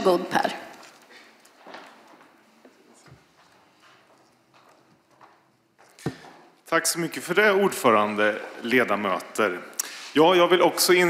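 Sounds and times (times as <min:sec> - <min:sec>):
footsteps on hard floor: 0:01.5 - 0:06.6.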